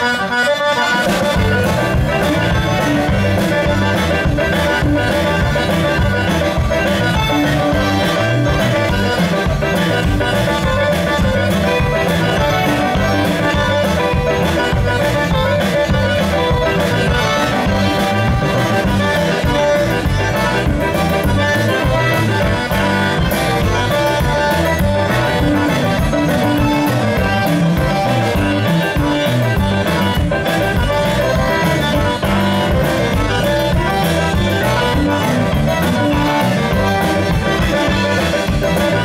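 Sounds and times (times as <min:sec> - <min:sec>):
accordion: 0:00.0 - 0:39.0
live band playing: 0:00.0 - 0:39.0.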